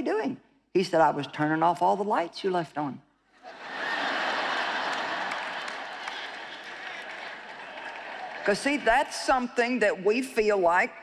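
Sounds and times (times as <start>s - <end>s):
large audience applauding: 3.8s - 9.2s.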